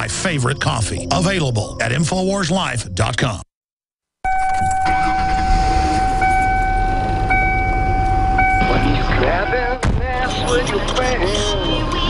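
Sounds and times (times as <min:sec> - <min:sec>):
steady high tone: 0:04.3 - 0:09.8.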